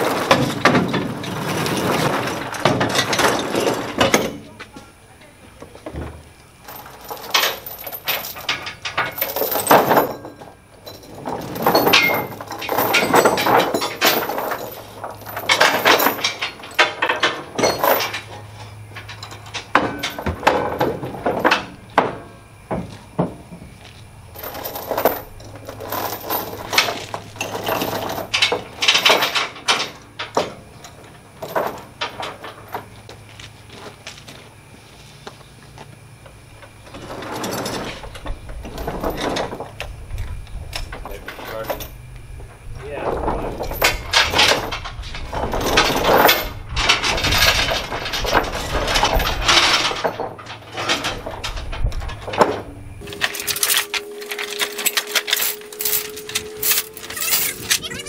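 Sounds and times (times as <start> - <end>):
metal chains clinking and clanking: 0.0 - 34.4, 36.2 - 58.0
low steady hum: 0.0 - 58.0.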